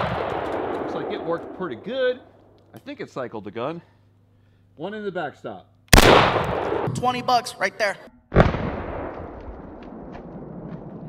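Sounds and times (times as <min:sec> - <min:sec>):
shotgun blast echo and rumble: 0:00.0 - 0:02.6, 0:05.9 - 0:07.1, 0:08.3 - 0:11.0.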